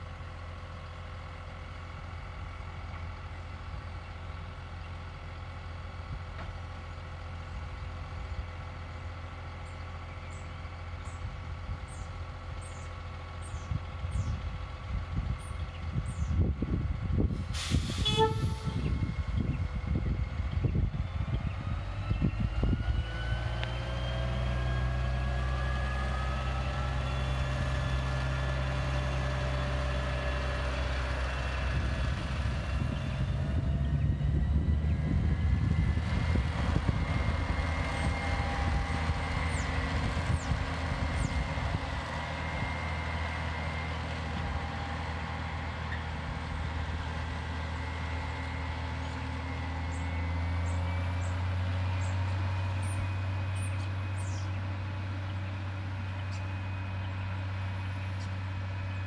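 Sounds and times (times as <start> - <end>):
diesel engines droning: 0.0 - 59.0
short horn toot: 17.6 - 19.0.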